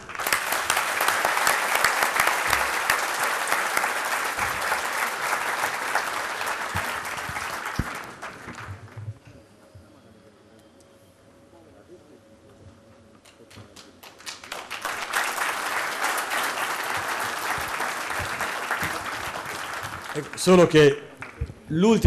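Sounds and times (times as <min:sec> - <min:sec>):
audience applauding: 0:00.0 - 0:09.1, 0:13.7 - 0:21.5.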